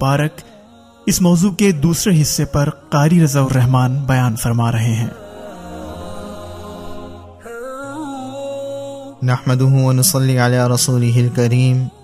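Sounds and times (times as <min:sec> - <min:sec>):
chant-like drone: 0:00.0 - 0:12.0.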